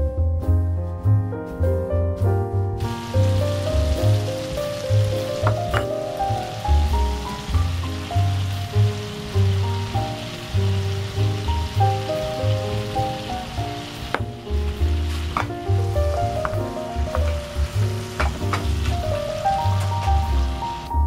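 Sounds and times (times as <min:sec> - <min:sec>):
instrumental background music: 0:00.0 - 0:21.0
sauce sizzling in frying pan: 0:02.8 - 0:21.0.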